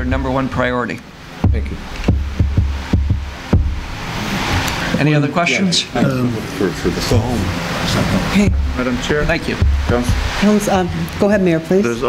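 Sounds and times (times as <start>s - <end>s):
deep hum: 1.1s - 5.0s, 6.1s - 11.2s
dull low thumps: 1.4s - 4.3s, 8.3s - 11.1s.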